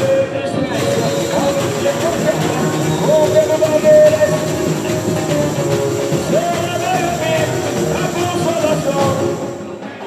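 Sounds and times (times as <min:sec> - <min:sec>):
samba drums: 0:00.0 - 0:10.0.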